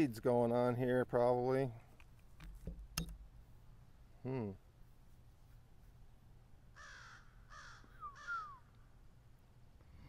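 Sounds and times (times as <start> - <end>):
bird calling: 6.8 - 8.9.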